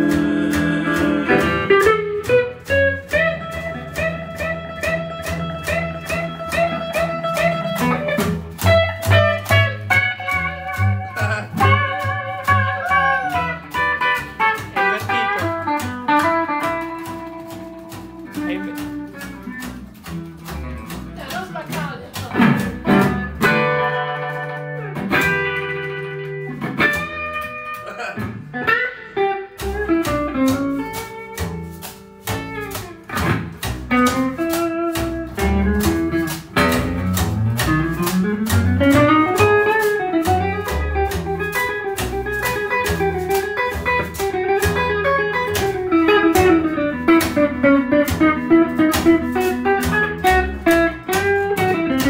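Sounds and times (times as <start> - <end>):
double bass: 0.0 - 52.0
electric guitar: 0.0 - 52.0
wire brush percussion beat: 0.0 - 52.0.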